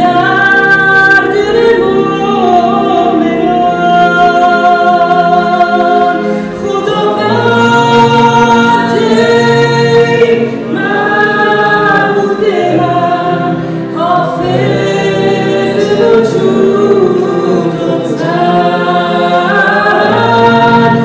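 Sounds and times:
digital piano playing: 0.0 - 21.0
woman singing a slow worship song: 0.0 - 21.0.

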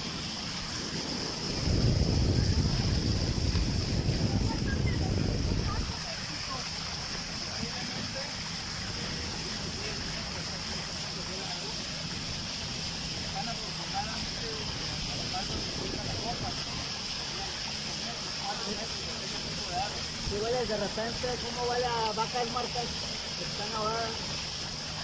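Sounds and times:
wind noise on microphone: 0.0 - 7.5, 12.0 - 17.9
small boat rushing over water: 0.0 - 25.0.

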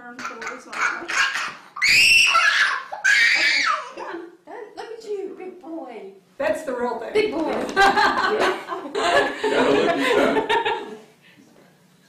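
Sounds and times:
toddler screaming and crying: 0.7 - 4.0.

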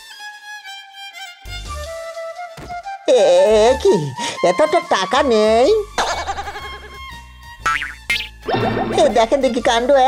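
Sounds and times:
background music: 0.0 - 10.0
wobbling warbling cartoon tone: 7.7 - 9.3.

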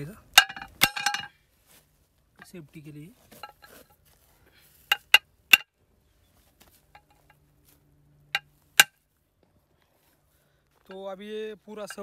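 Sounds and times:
hammer clinking on steel: 0.4 - 1.3.

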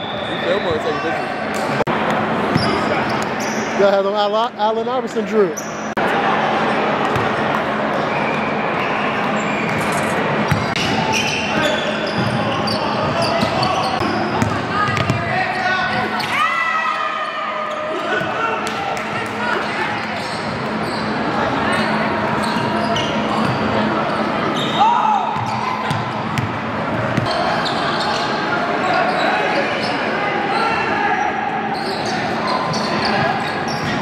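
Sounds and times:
sneaker squeaks: 2.5 - 3.8, 5.5 - 6.0, 8.0 - 16.4, 19.6 - 28.4, 31.8 - 34.0
basketball bouncing: 10.5 - 11.0, 13.0 - 15.3, 25.4 - 27.3.

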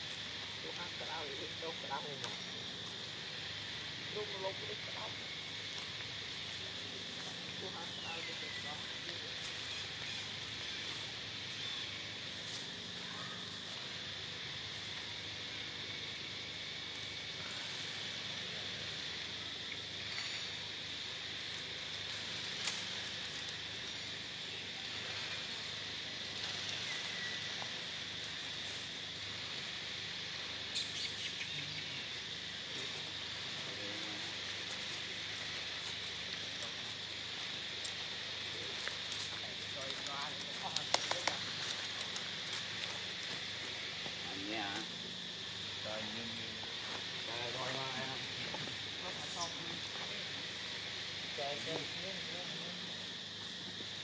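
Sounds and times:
high-pitched insect drone: 0.0 - 54.0.

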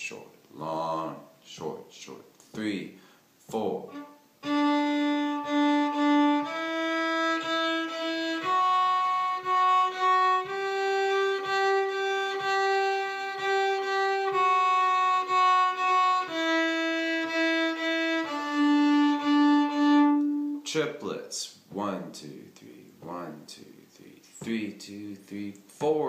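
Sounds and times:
fiddle bowing a slow scale: 3.8 - 20.6.

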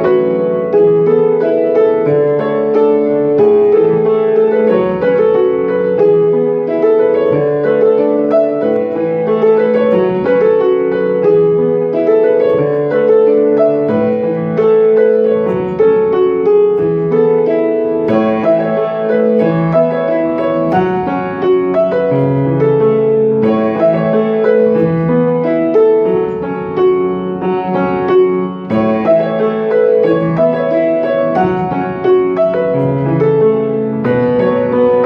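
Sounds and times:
solo grand piano: 0.0 - 35.0.

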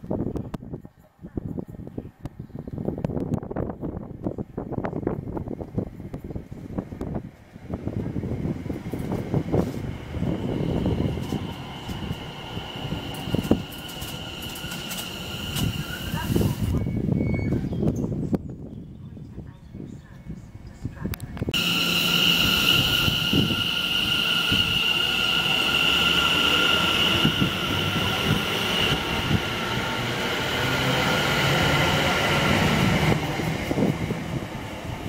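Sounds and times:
train wheels rumbling on rail: 2.7 - 18.2, 20.8 - 35.0
steady high whine: 21.6 - 30.2.

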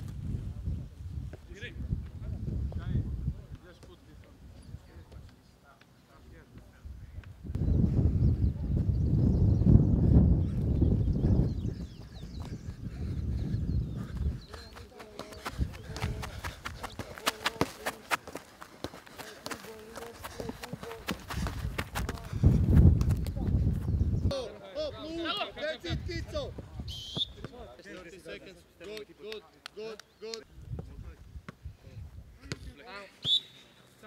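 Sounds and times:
feet tapping football: 14.0 - 23.9.

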